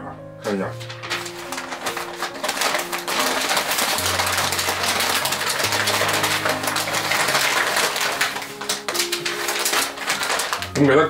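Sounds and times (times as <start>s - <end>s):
soft background music: 0.0s - 11.0s
paper crinkling and rustling: 0.8s - 11.0s.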